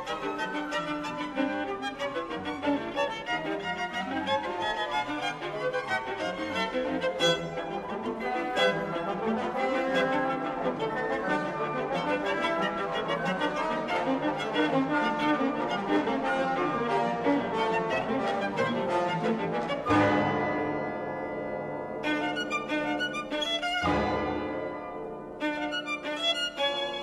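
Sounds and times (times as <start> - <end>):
orchestral music: 0.0 - 27.0
loud accented orchestral chord: 19.8 - 25.4.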